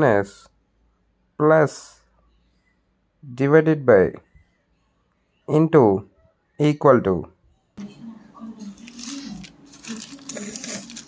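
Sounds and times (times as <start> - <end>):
plastic pieces scraping and clattering: 8.9 - 11.0.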